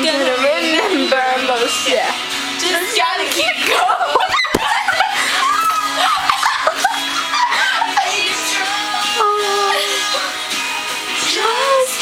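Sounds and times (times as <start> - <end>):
girls talking and laughing: 0.0 - 10.8
toy thumping against camera: 4.4 - 4.8.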